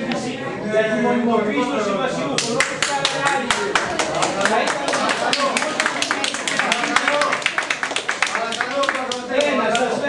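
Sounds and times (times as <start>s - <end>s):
people clapping: 2.4s - 10.0s.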